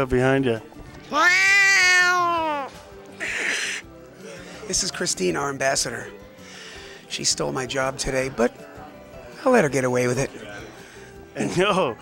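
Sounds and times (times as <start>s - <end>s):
person squealing: 1.1s - 3.8s.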